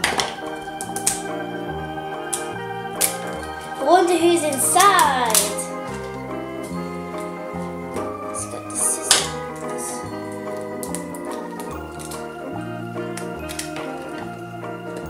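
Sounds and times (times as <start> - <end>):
bass line: 0.0 - 15.0
organ-like keyboard tune: 0.0 - 15.0.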